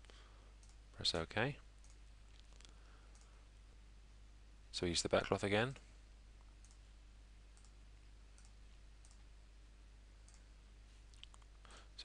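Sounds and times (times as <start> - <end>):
computer mouse clicks: 0.6 - 0.8, 1.8 - 3.3, 7.6 - 7.8, 8.4 - 9.2, 10.2 - 10.5.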